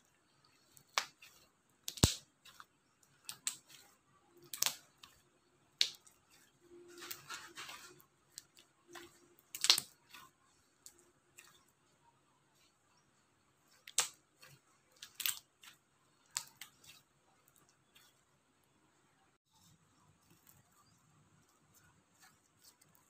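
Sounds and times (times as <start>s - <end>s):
slime crackly squishing: 0.1s - 12.8s, 13.6s - 18.3s, 20.0s - 23.0s.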